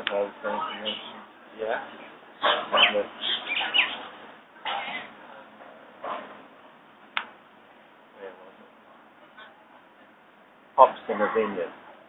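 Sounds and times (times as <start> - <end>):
man speaking: 0.0 - 3.2, 10.8 - 11.8.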